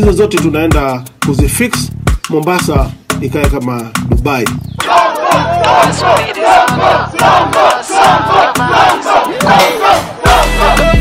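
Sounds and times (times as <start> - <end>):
crowd chanting: 4.8 - 11.0.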